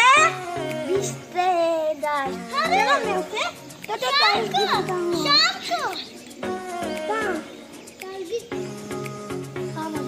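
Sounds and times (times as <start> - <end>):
boy calling out: 0.0 - 0.5, 1.4 - 6.2
music playing: 0.0 - 10.0.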